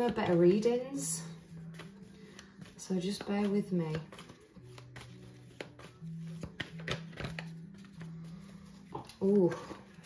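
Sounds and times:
soft background music: 0:00.0 - 0:10.0
cards clicking and tapping: 0:01.7 - 0:08.1, 0:08.7 - 0:10.0.

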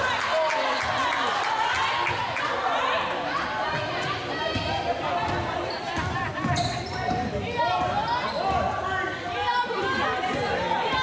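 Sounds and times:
people shouting in a gym: 0:00.0 - 0:11.0.

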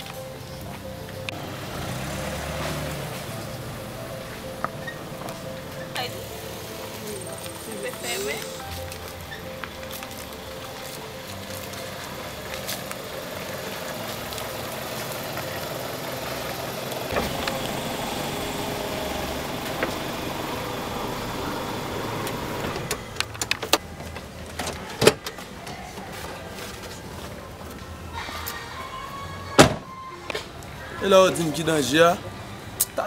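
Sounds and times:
car engine running: 0:00.1 - 0:10.7, 0:12.0 - 0:23.6
car door opening clack: 0:17.1 - 0:20.8, 0:24.5 - 0:25.5, 0:29.6 - 0:30.0.

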